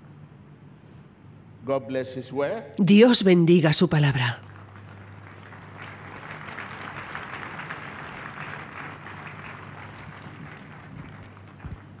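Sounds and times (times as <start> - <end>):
low steady hum: 0.0 - 12.0
crowd applauding: 4.4 - 12.0.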